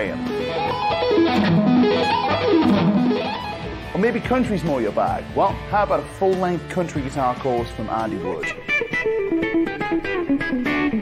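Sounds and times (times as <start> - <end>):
electric guitar sweep-picked arpeggios: 0.0 - 4.7, 8.1 - 11.0.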